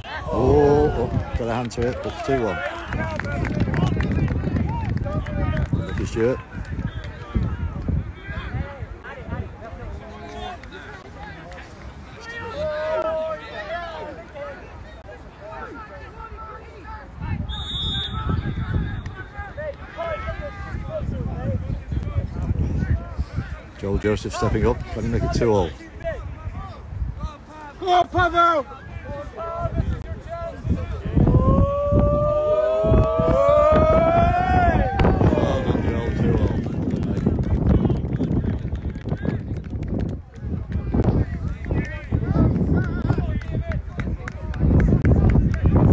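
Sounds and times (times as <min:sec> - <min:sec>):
wind rumble on microphone: 0:00.0 - 0:12.8, 0:17.1 - 0:19.4, 0:20.2 - 0:27.4, 0:28.1 - 0:45.9
men talking and calling out: 0:00.0 - 0:39.5.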